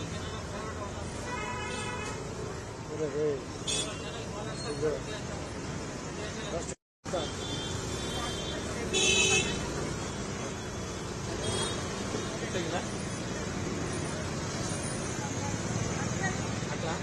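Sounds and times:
street traffic: 0:00.0 - 0:17.0
vehicle horn honking: 0:07.1 - 0:09.7.

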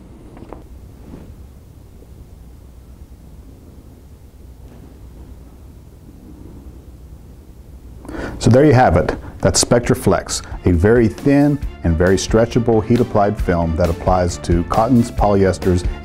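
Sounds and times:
faint rustles: 0:00.0 - 0:08.5
low room hum: 0:00.0 - 0:16.0.

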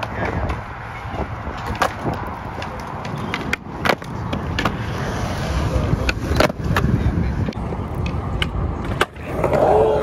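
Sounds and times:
skateboard clacks: 0:00.0 - 0:10.0
skateboard wheels rolling on concrete: 0:00.0 - 0:10.0.

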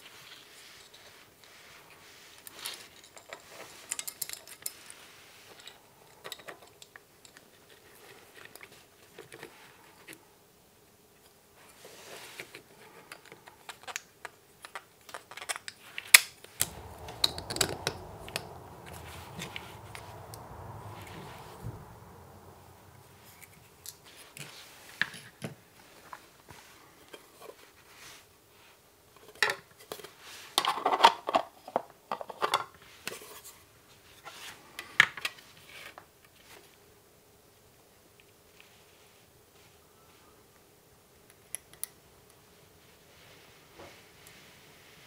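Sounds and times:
low background noise: 0:00.0 - 0:45.0.

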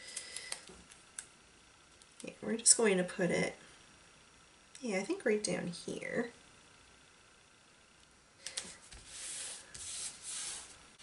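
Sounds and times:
skin sliding over paper: 0:08.8 - 0:10.8.

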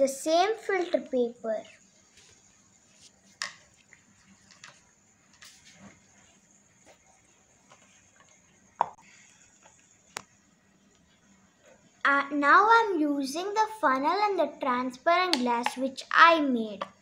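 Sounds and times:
plastic cups knocking on glass table: 0:08.8 - 0:09.0.

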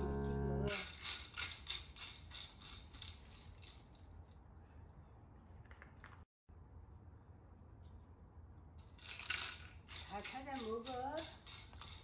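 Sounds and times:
background music: 0:00.0 - 0:00.8.

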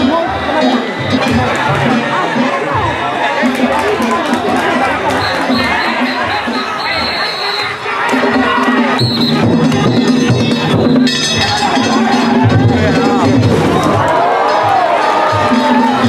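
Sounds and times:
crowd shouting: 0:00.0 - 0:16.0
rhythmic drumming: 0:00.0 - 0:16.0
high whistle-like tone: 0:05.1 - 0:07.8, 0:09.0 - 0:11.2.

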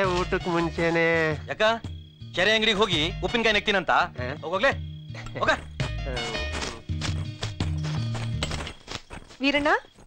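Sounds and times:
clopping percussive knocks: 0:05.2 - 0:09.4.

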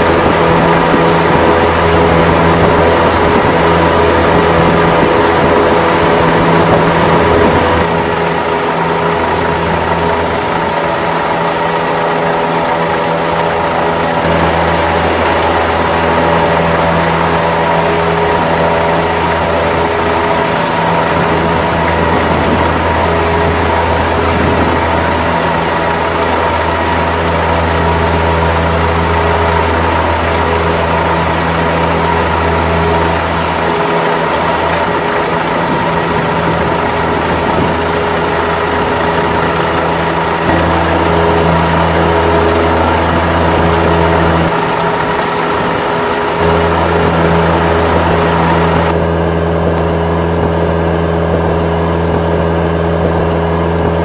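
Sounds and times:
heavy engine idling: 0:00.0 - 0:54.0.

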